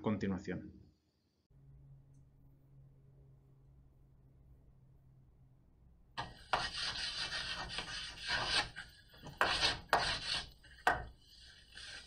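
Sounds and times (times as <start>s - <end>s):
chalk scratching on blackboard: 6.2s - 12.0s.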